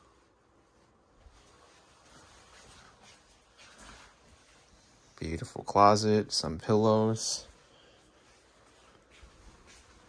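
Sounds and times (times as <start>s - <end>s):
soft rustle: 0.0s - 5.4s, 7.1s - 10.0s.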